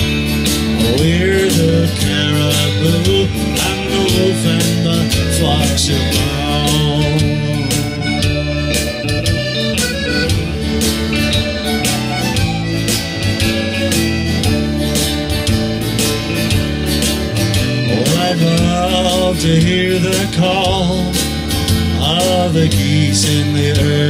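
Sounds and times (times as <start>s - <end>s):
accordion melody: 0.0s - 24.0s
electric guitar: 0.0s - 24.0s
strummed acoustic guitar: 0.0s - 24.0s.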